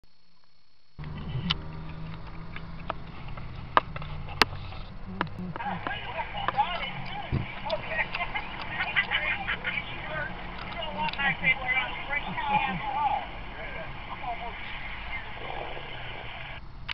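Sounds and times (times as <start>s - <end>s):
low steady hum: 0.1s - 16.9s
sharp clicks: 1.0s - 11.3s
chatter through phone speaker: 4.9s - 16.6s.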